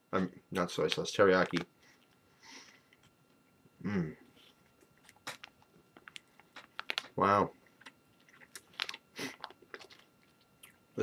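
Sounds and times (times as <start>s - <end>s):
person chewing jerky: 4.4s - 11.0s.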